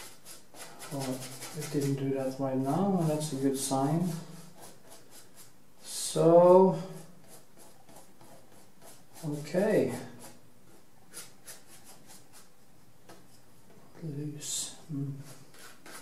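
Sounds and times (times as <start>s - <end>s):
paintbrush scratching on canvas: 0.0s - 12.7s, 15.1s - 16.0s.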